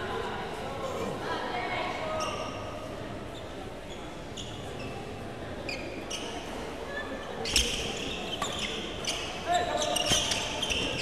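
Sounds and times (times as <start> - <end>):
murmur of spectators' voices: 0.0 - 11.0
sports shoes squeaking: 5.7 - 6.4, 7.4 - 11.0.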